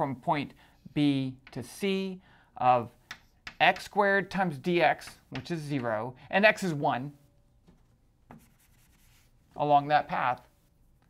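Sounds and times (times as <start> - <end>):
rubbing on a chalkboard: 8.3 - 9.4.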